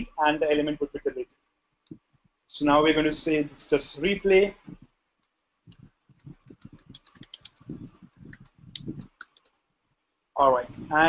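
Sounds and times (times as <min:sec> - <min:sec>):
computer keyboard typing: 0:06.2 - 0:09.5.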